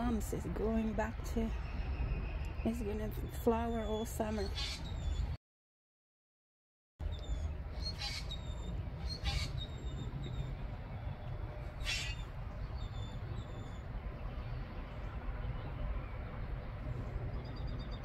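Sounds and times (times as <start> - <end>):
birds chirping in the distance: 0.0 - 5.4, 7.0 - 18.0
wind rumble on microphone: 0.0 - 5.4, 7.0 - 18.0.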